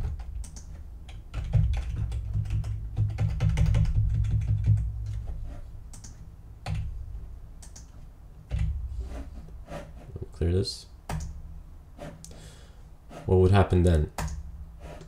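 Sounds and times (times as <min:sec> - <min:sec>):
typing on computer keyboard: 0:00.0 - 0:05.2, 0:05.9 - 0:06.9, 0:07.6 - 0:07.9.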